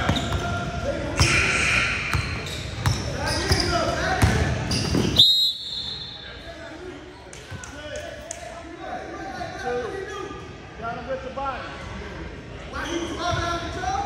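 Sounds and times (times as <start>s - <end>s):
players' voices echoing: 0.0s - 5.2s
referee's whistle blast: 5.0s - 6.3s.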